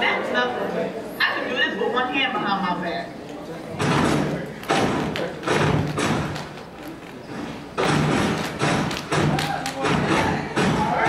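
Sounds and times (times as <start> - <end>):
stomping and clapping in unison: 3.8 - 6.6, 7.8 - 11.0.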